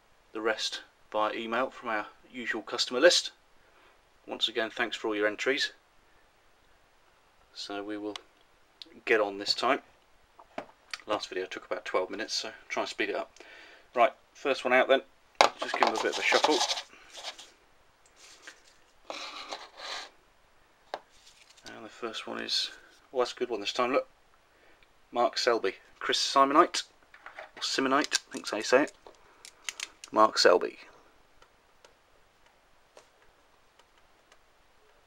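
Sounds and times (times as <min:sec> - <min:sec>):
paper slips rustling in plastic bowl: 0:15.5 - 0:17.4.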